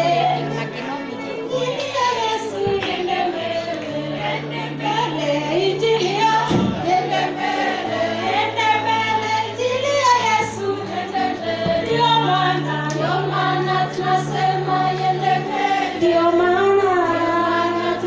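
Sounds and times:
group of voices singing: 0.0 - 18.0.

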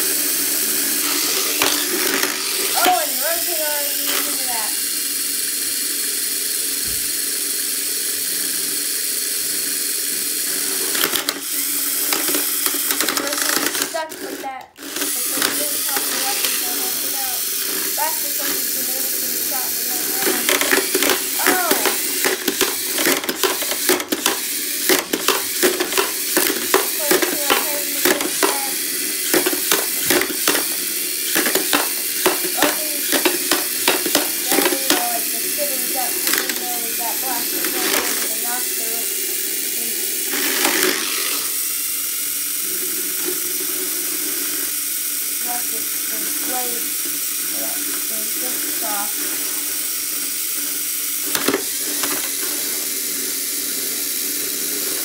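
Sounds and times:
small electric motors whirring: 0.0 - 55.0
plastic toy robots clattering: 0.4 - 5.5, 9.1 - 41.9, 42.7 - 55.0.

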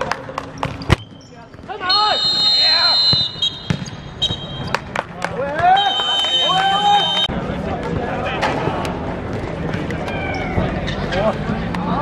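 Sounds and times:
players shouting: 1.7 - 4.4, 5.3 - 7.3
referee's whistle blast: 1.8 - 4.7, 5.7 - 7.3.

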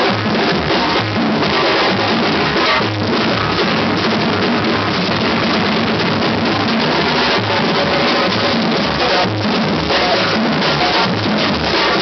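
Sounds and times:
bass drums beating: 0.0 - 12.0.

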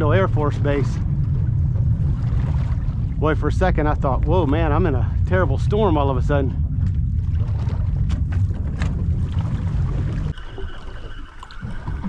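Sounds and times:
distant military jets rumbling: 0.0 - 10.7.

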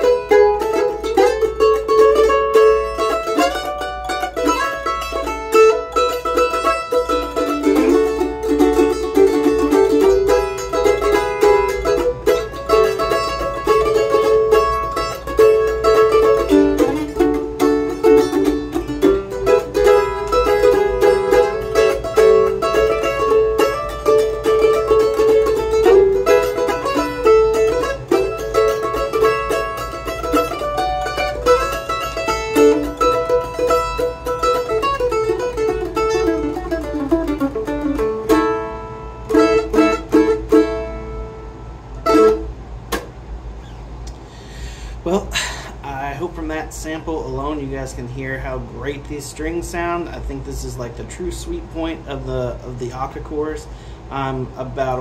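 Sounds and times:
mandolin melody: 0.0 - 43.6.

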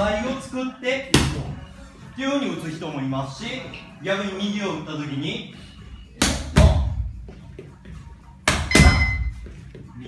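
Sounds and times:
boxing gloves hitting mitts: 6.2 - 7.2, 8.4 - 9.4.

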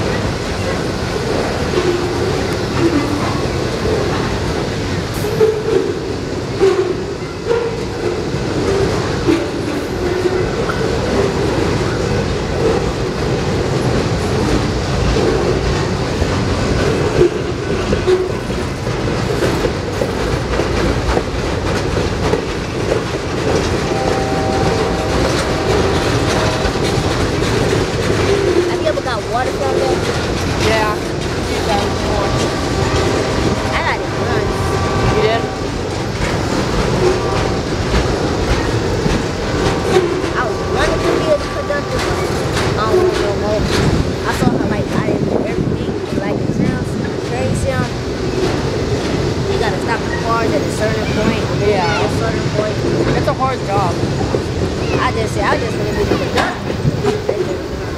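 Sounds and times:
freight train rumbling past: 0.0 - 57.9
wheels clacking over rail joints: 0.0 - 57.9.

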